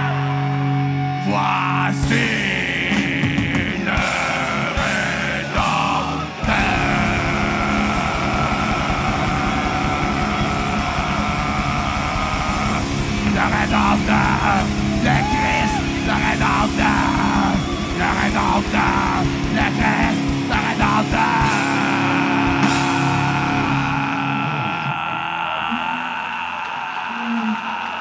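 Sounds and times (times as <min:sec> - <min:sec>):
heavy metal band playing live: 0:00.0 - 0:26.0
screamed vocals: 0:00.0 - 0:28.0
voices shouting and singing: 0:00.0 - 0:28.0.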